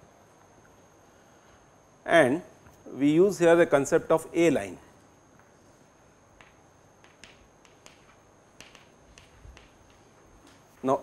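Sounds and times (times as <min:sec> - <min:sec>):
chalk tapping on blackboard: 0:06.4 - 0:10.8.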